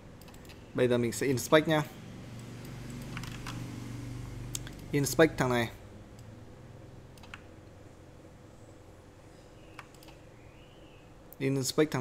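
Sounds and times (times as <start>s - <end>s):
steady low hum: 0.0s - 12.0s
faint computer clicks: 9.7s - 10.2s.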